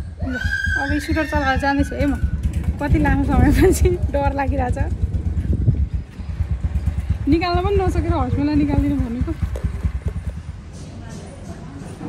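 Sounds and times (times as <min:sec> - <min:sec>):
low rumble: 0:00.0 - 0:10.8
woman speaking: 0:00.8 - 0:02.2, 0:02.8 - 0:04.9, 0:07.2 - 0:09.4.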